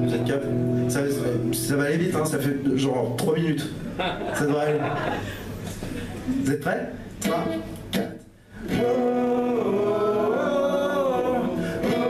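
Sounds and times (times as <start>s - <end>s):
acoustic guitar strumming: 0.0s - 2.2s.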